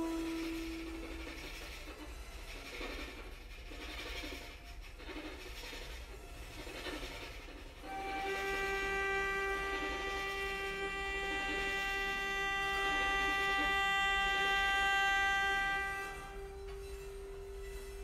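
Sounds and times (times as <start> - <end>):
lower tone: 0.0 - 1.4.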